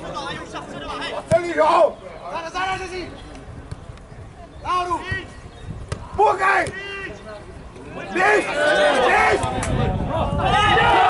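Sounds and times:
men shouting: 0:07.9 - 0:11.0.

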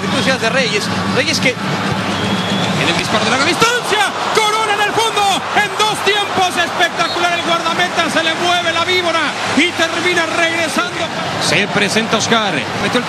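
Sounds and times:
stadium crowd noise: 0:00.0 - 0:13.0
man commentating excitedly: 0:02.8 - 0:13.0.

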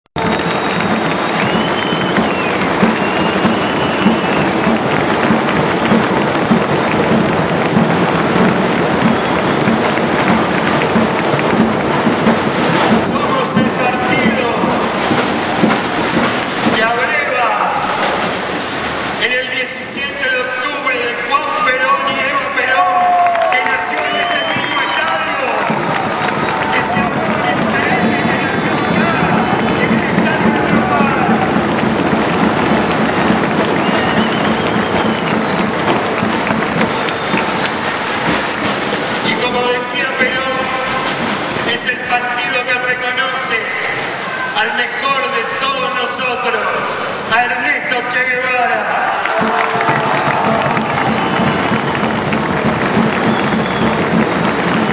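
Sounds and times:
crowd shouting and cheering: 0:00.2 - 0:54.9
man speaking over public address: 0:12.8 - 0:15.7, 0:16.6 - 0:18.4, 0:19.2 - 0:31.8, 0:39.2 - 0:49.3.

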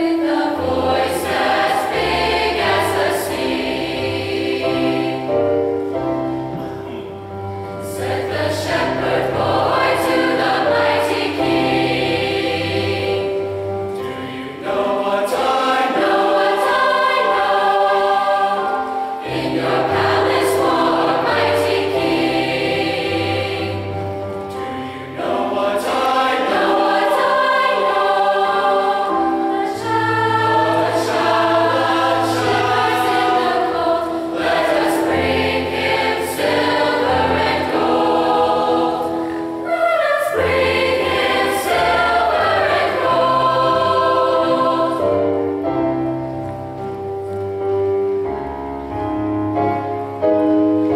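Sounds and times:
mixed choir singing: 0:00.0 - 0:46.2.

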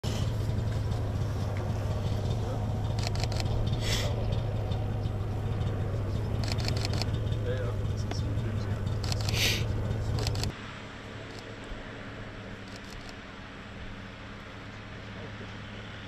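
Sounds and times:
paramotor engine running: 0:00.0 - 0:16.0
quick clicks: 0:03.0 - 0:03.6, 0:06.4 - 0:07.1, 0:09.0 - 0:09.5, 0:10.2 - 0:10.5.

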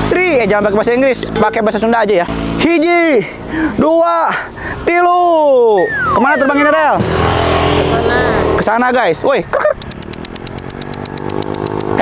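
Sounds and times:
engine running steadily: 0:00.0 - 0:12.0
rapid high ticking: 0:09.6 - 0:12.0.

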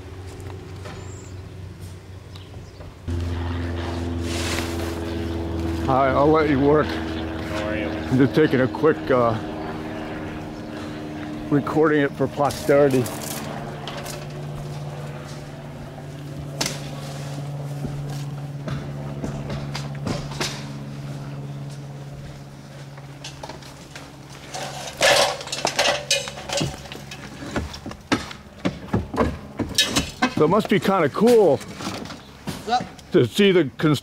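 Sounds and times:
low machine hum: 0:00.0 - 0:33.8
shingles clattering: 0:23.2 - 0:32.6
knocks and scrapes: 0:24.4 - 0:30.6.

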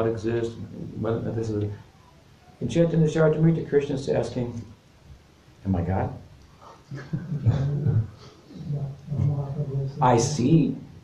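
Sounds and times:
man chuckling: 0:06.6 - 0:08.4.

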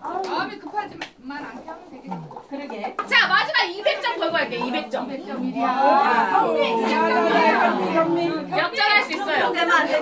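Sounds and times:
group of people chattering: 0:00.0 - 0:10.0.

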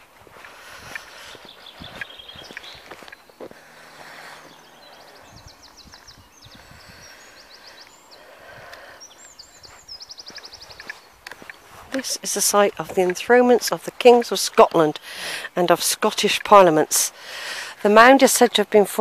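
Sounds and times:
footsteps on tarmac: 0:00.0 - 0:08.0, 0:08.7 - 0:15.2
songbirds singing: 0:00.0 - 0:19.0.

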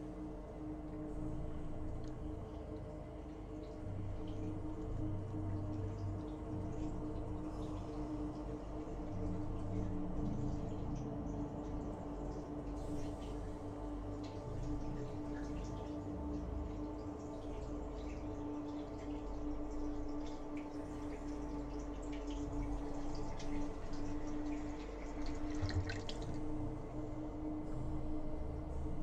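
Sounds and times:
steady low hum: 0:00.0 - 0:29.0
water dripping and trickling: 0:00.0 - 0:29.0.

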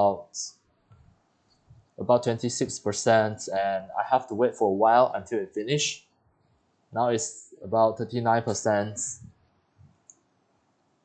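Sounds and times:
faint hiss: 0:00.0 - 0:00.6, 0:01.5 - 0:06.0, 0:07.0 - 0:10.2.

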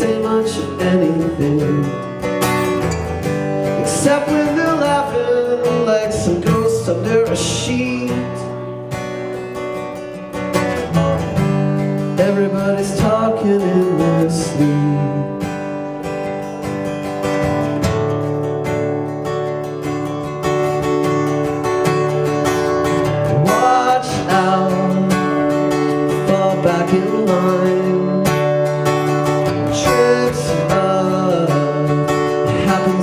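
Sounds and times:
man singing: 0:00.0 - 0:02.3, 0:03.6 - 0:08.8, 0:11.8 - 0:15.7, 0:23.0 - 0:33.0
acoustic guitar strumming: 0:00.0 - 0:33.0.

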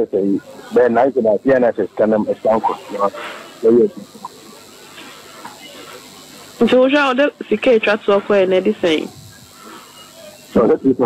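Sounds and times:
person speaking: 0:00.0 - 0:09.2.

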